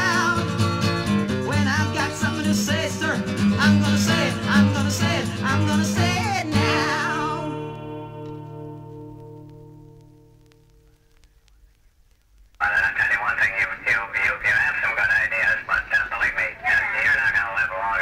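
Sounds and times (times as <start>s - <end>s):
guitar: 0.0s - 11.6s
tinny narrow-band old recording: 0.0s - 18.0s.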